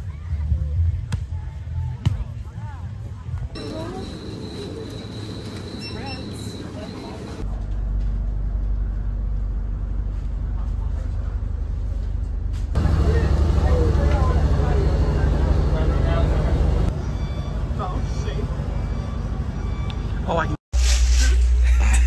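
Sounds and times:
people talking: 1.3 - 7.4, 12.8 - 16.9, 17.7 - 18.6
boat engine rumble: 3.5 - 20.5.

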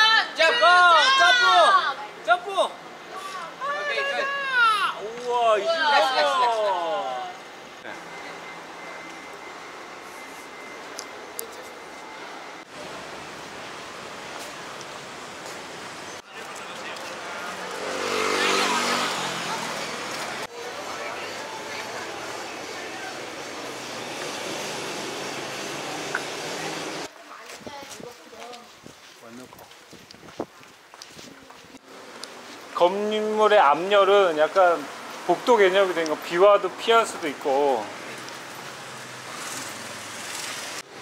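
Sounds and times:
road traffic: 0.0 - 41.0.

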